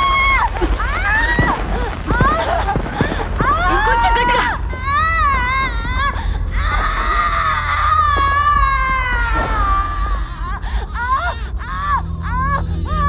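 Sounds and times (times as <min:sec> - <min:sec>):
high-pitched wavering cries: 0:03.6 - 0:13.0.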